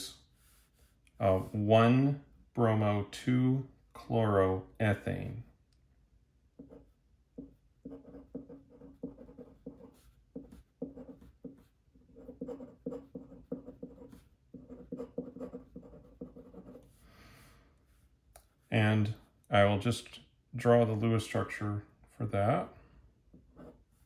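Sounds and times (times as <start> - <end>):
pen nib scratching on paper: 6.6 - 17.0.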